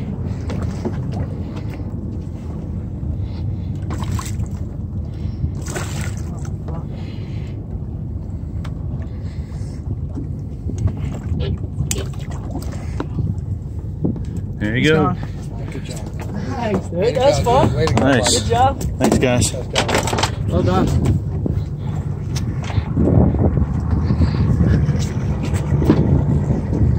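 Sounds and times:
boat engine idling: 0:00.0 - 0:26.9.

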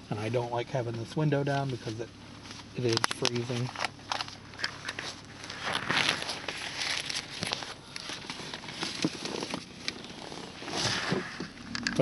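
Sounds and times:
car road noise: 0:00.0 - 0:12.0.

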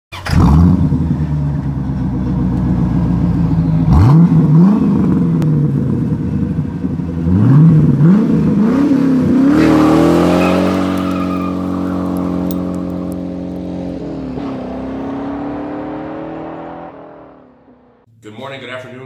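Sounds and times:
car engine idling and revving: 0:00.1 - 0:18.1
tyres spinning: 0:09.5 - 0:13.6.

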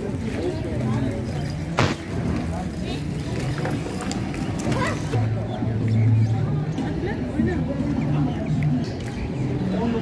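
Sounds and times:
indistinct crowd voices: 0:00.0 - 0:10.0.

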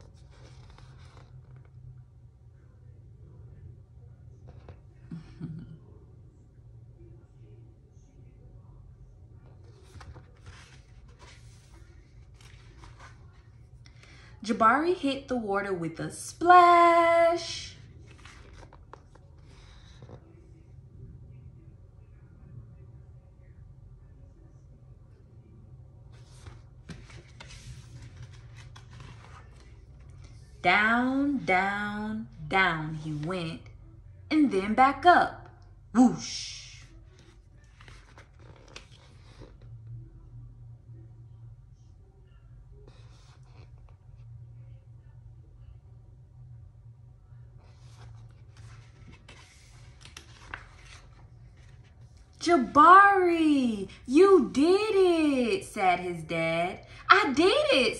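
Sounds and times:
paper rustling: 0:00.0 - 0:01.7, 0:09.5 - 0:13.6, 0:17.9 - 0:20.2, 0:26.1 - 0:30.5, 0:37.1 - 0:39.7, 0:47.6 - 0:52.4
low room hum: 0:00.0 - 0:57.9.

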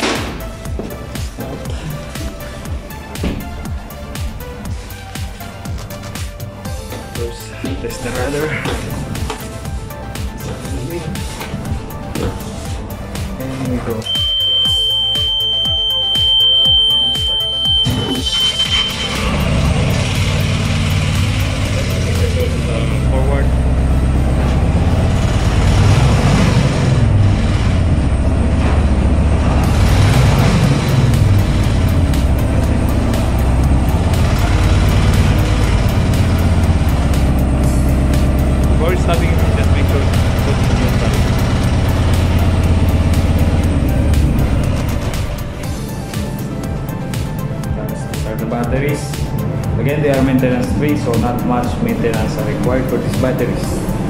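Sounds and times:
diesel engine revving: 0:01.6 - 0:54.0
high buzzer tone: 0:14.0 - 0:20.0.

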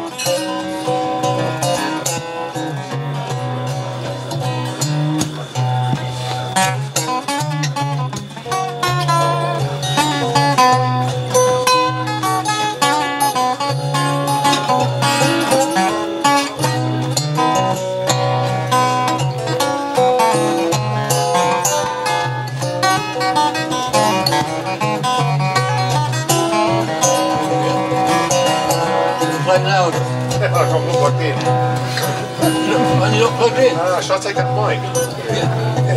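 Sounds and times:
acoustic guitars playing: 0:00.0 - 0:35.9.

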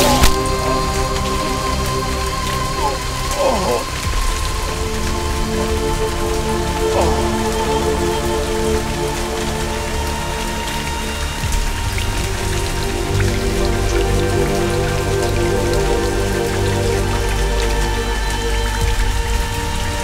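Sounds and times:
heavy rain falling: 0:00.0 - 0:20.0
slow music score: 0:00.0 - 0:20.0.

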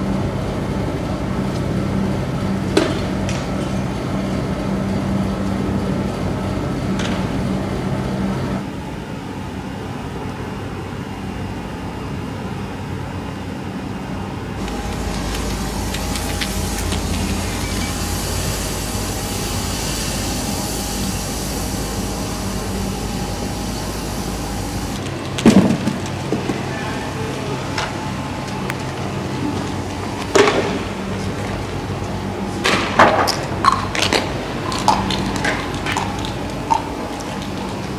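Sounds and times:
vehicle engine humming: 0:14.4 - 0:32.6
steady high hiss: 0:14.6 - 0:25.3
heavy low rumble: 0:14.6 - 0:30.2.

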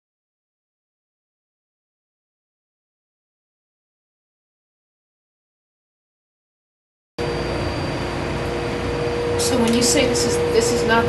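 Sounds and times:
drilling machinery drone: 0:07.2 - 0:11.0
faint high whine: 0:07.2 - 0:11.0.

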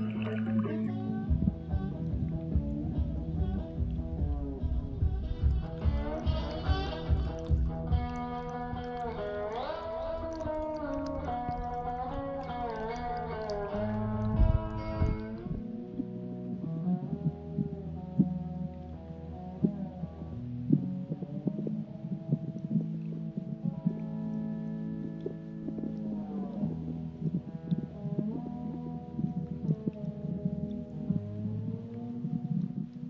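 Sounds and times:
strummed guitar: 0:00.0 - 0:33.0
harmonica melody with bent notes: 0:05.2 - 0:08.6.

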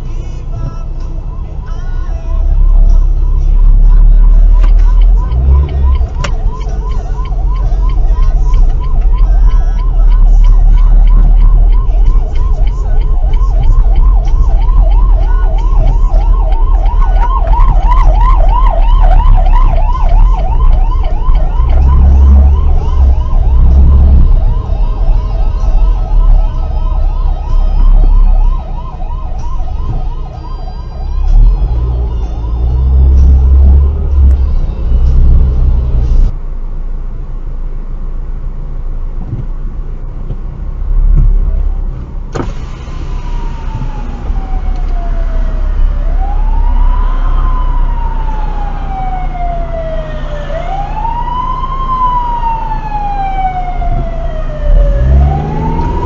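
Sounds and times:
road and engine rumble: 0:00.0 - 0:56.0
ambulance siren warbling: 0:00.9 - 0:36.3, 0:42.4 - 0:56.0.

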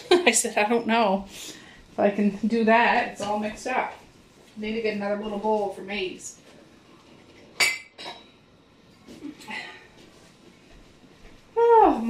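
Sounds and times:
bowl clinking on table: 0:07.6 - 0:08.4.

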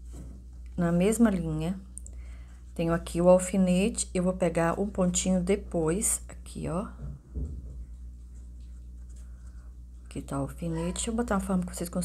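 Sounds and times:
steady low hum: 0:00.0 - 0:12.0
soft bump: 0:07.0 - 0:07.9.

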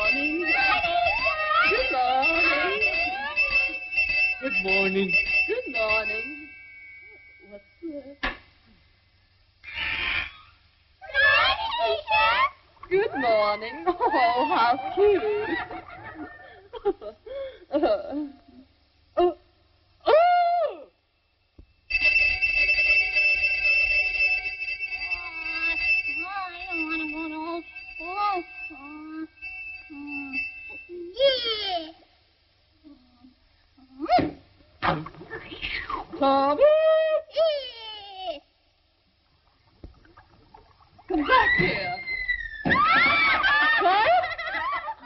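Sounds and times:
squeaky cartoon voices chattering: 0:00.0 - 0:05.1, 0:09.6 - 0:12.6
high-pitched alarm bell ringing: 0:00.0 - 0:07.9, 0:21.3 - 0:32.0
wavering melody: 0:00.0 - 0:07.9, 0:21.9 - 0:31.7
thin steady high tone: 0:00.0 - 0:08.2, 0:11.0 - 0:18.6, 0:20.7 - 0:34.0.

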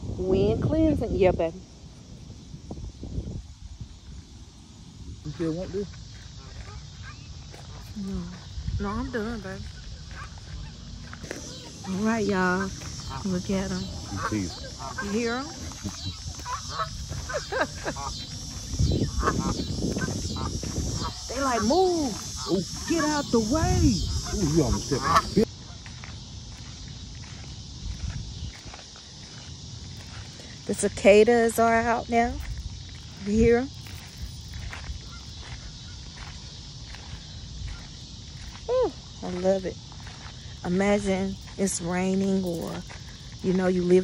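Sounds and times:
wind rumbling on microphone: 0:00.0 - 0:25.8, 0:26.7 - 0:44.0
cicadas droning: 0:00.0 - 0:44.0
faint footsteps scuffing: 0:05.9 - 0:30.6, 0:32.4 - 0:43.7
geese honking: 0:08.8 - 0:25.8.

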